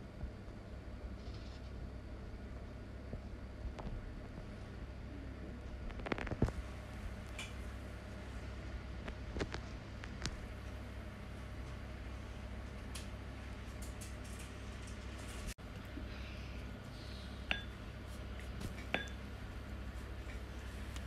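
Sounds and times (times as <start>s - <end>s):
low hum: 0.0s - 21.0s.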